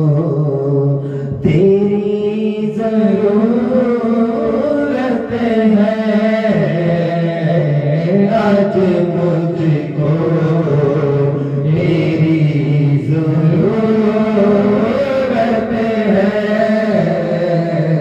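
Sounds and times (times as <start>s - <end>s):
man singing slow devotional song: 0.0s - 18.0s.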